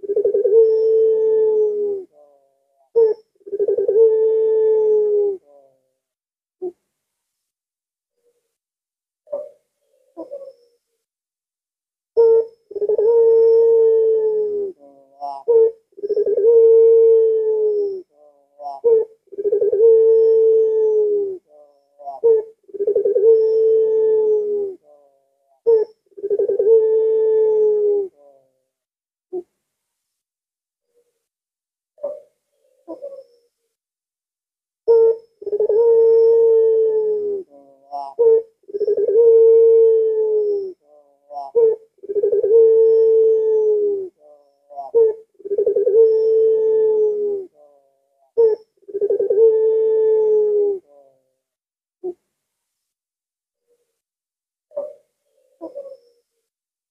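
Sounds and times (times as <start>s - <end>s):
dove cooing: 0.0s - 5.9s, 9.3s - 10.7s, 12.2s - 28.6s, 32.0s - 33.5s, 34.9s - 51.3s, 54.7s - 56.2s.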